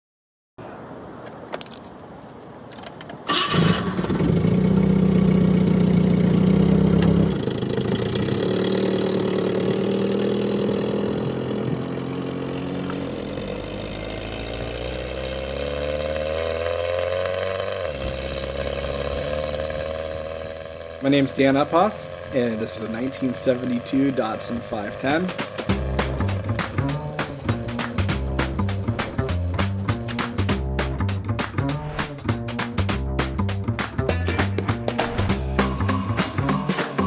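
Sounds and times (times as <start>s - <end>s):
starter clicks: 1.4s - 3.5s
car engine starting and running: 3.2s - 37.0s.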